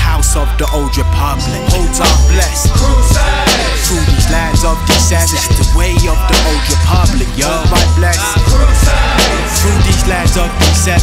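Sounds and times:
hip hop beat with bass: 0:00.0 - 0:11.0
person rapping: 0:00.0 - 0:11.0.

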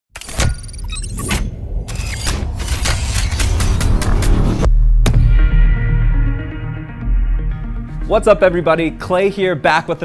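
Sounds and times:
sharp hits and clicks: 0:00.2 - 0:05.6
low rumble: 0:00.8 - 0:07.8.

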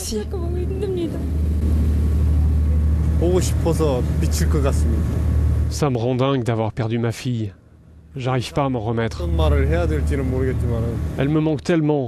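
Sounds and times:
ship engine drone: 0:00.0 - 0:06.5, 0:07.2 - 0:11.9.

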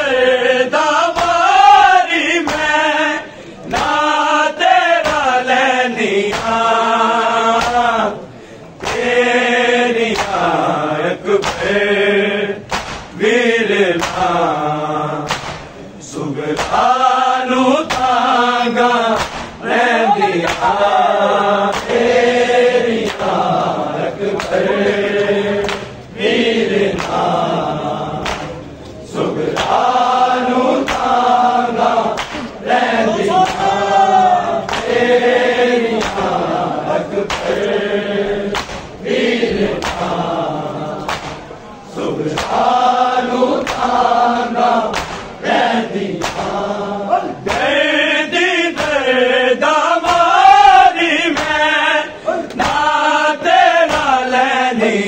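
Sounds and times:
men chanting a lament: 0:00.0 - 0:55.0
hands slapping chests: 0:01.1 - 0:01.5, 0:02.4 - 0:02.8, 0:03.6 - 0:04.2, 0:05.0 - 0:05.4, 0:06.2 - 0:06.7, 0:07.5 - 0:08.0, 0:08.8 - 0:09.2, 0:10.1 - 0:10.5, 0:11.4 - 0:11.8, 0:12.6 - 0:13.2, 0:14.0 - 0:14.4, 0:15.2 - 0:15.8, 0:16.5 - 0:16.9, 0:17.8 - 0:18.2, 0:19.1 - 0:21.0, 0:21.7 - 0:22.2, 0:23.0 - 0:26.0, 0:26.9 - 0:27.4, 0:28.2 - 0:28.7, 0:29.5 - 0:30.0, 0:30.7 - 0:31.3, 0:32.1 - 0:32.6, 0:33.3 - 0:33.9, 0:34.6 - 0:35.3, 0:35.9 - 0:36.4, 0:37.1 - 0:37.8, 0:38.5 - 0:40.3, 0:41.0 - 0:41.6, 0:42.2 - 0:42.8, 0:43.5 - 0:44.1, 0:44.9 - 0:45.4, 0:46.2 - 0:46.6, 0:47.4 - 0:47.8, 0:48.7 - 0:49.1, 0:50.0 - 0:50.4, 0:51.3 - 0:51.7, 0:52.5 - 0:52.9, 0:53.8 - 0:54.2.

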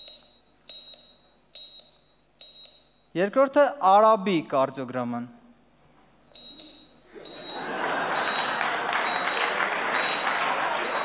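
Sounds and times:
heart monitor beeps: 0:00.0 - 0:03.2, 0:06.3 - 0:11.0.

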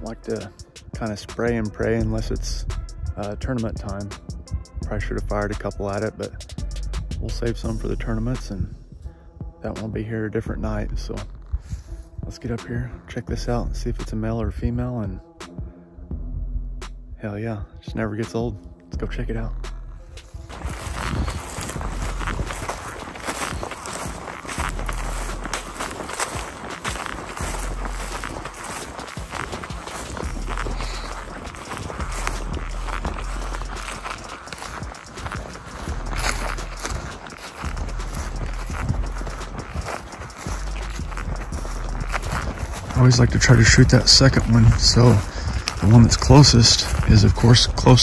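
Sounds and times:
footsteps on grass and dry leaves: 0:00.0 - 0:02.4, 0:04.9 - 0:06.1, 0:19.3 - 0:48.0.

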